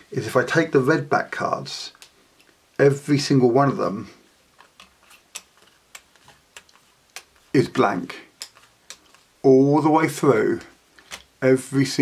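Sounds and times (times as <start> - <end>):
playing cards ticking onto mat: 4.6 - 7.5, 8.4 - 9.3.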